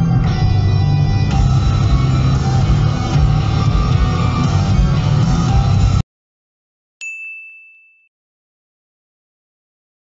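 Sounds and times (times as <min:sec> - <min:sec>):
bell-like ding: 0:07.0 - 0:08.1.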